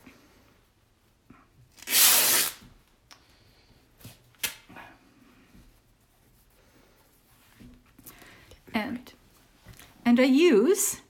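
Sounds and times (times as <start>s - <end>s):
fabric tearing: 1.8s - 2.7s.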